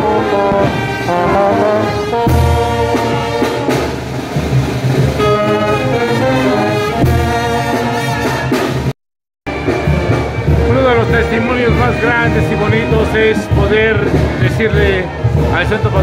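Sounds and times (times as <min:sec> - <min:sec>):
man's voice: 0:00.0 - 0:03.6, 0:10.6 - 0:16.0
brass band playing dance music: 0:00.0 - 0:16.0.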